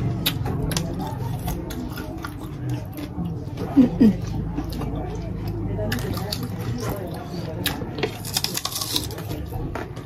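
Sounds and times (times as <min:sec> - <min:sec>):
close-up chewing: 0:00.0 - 0:10.0.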